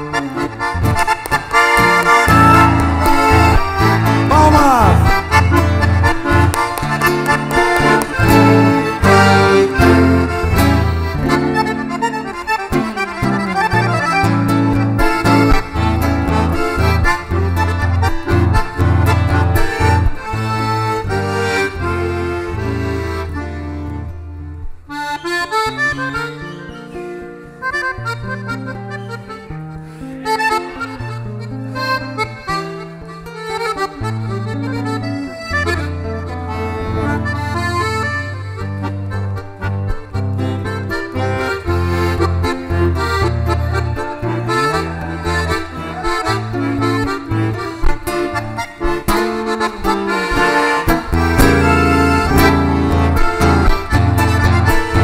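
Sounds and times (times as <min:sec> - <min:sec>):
acoustic guitar: 0:00.0 - 0:55.0
button accordion playing: 0:00.0 - 0:55.0.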